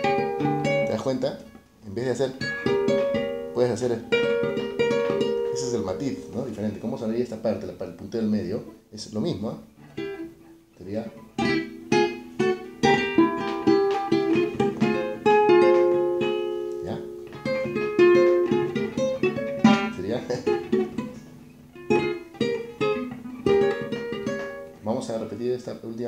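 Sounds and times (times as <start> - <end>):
acoustic guitar picked melody: 0.0 - 25.7.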